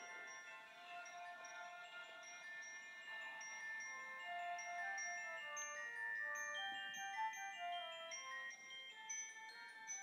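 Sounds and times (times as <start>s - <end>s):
chime-like bell melody: 0.0s - 10.0s.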